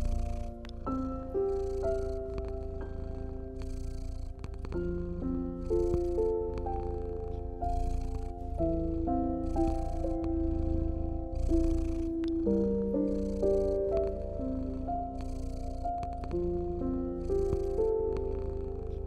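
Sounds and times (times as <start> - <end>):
cat purring: 0.0 - 19.0
soft piano notes: 0.0 - 19.0.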